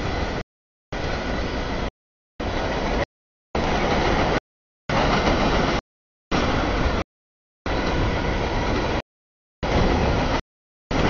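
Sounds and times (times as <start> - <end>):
freight train cars rolling: 1.0 - 7.0.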